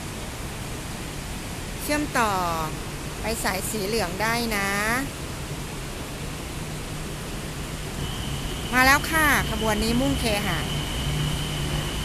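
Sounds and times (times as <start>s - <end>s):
steady hiss with low hum: 0.0s - 12.0s
train high whine: 5.4s - 12.0s.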